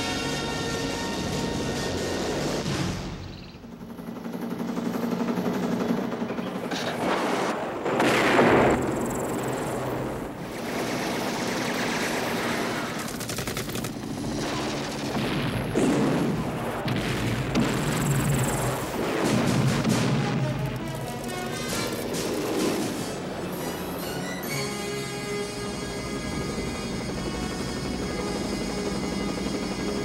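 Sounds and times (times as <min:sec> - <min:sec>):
action film music: 0:00.0 - 0:06.5, 0:10.5 - 0:30.0
rapid gunfire: 0:04.6 - 0:23.2.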